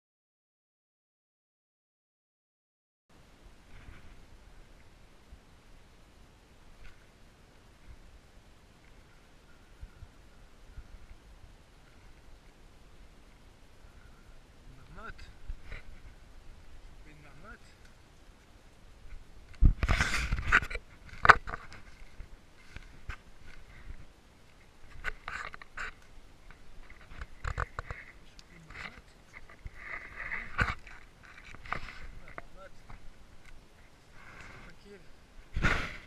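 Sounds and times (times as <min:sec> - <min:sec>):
camera handling bumps and rustling: 0:19.5 - 0:23.6, 0:24.9 - 0:33.0.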